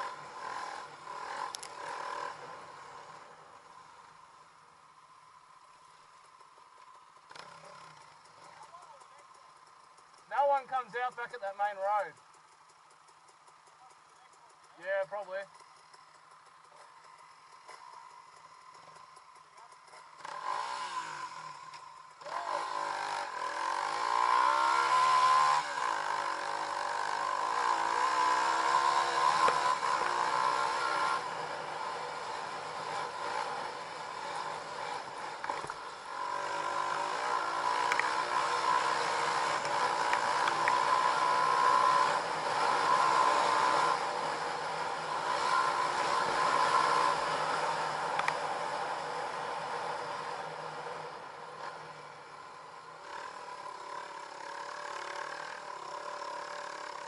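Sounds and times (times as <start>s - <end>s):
dirt bike engine revving: 0.0s - 4.4s, 14.9s - 57.0s.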